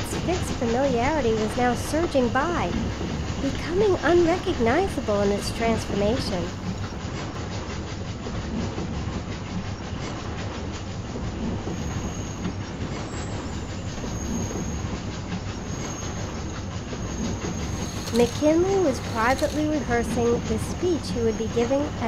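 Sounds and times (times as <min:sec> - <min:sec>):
train wheels clattering on rails: 0:00.0 - 0:22.0.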